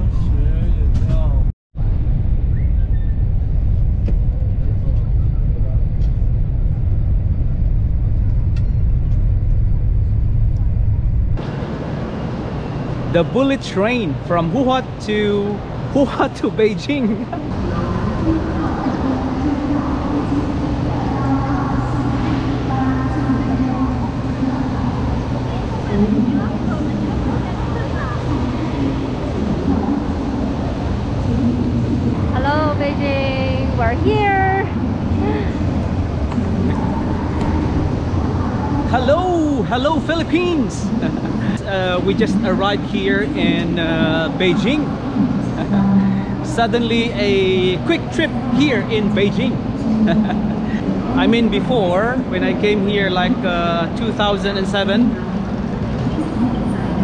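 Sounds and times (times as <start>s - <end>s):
station ambience: 0.0s - 57.0s
steady low hum: 0.0s - 57.0s
train rumbling inside cabin: 0.0s - 57.0s
passengers' voices: 11.4s - 57.0s.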